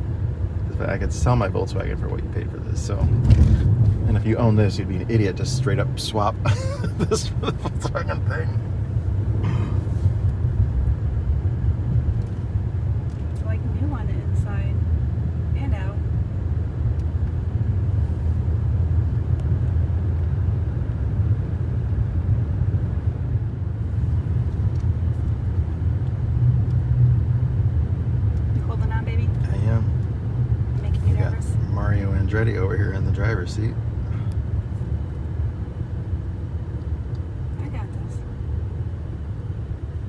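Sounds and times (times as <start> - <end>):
road and engine noise in car: 0.0 - 40.0.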